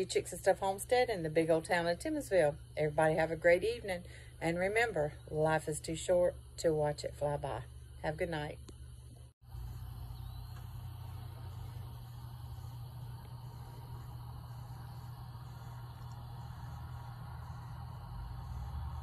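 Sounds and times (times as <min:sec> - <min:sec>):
distant road traffic rumble: 0:09.4 - 0:19.0
insects chirping: 0:09.5 - 0:19.0.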